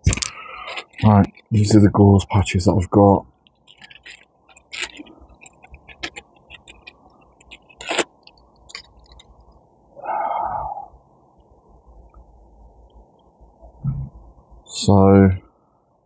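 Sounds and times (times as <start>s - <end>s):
small clicks and rustles: 0.1s - 1.7s, 3.3s - 9.6s
short breath-like sound: 10.0s - 11.0s.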